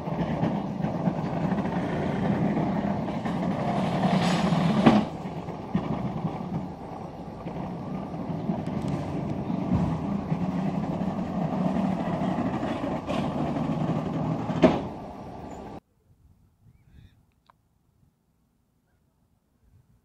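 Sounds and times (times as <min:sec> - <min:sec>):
cableway mechanical rumble: 0:00.0 - 0:15.8.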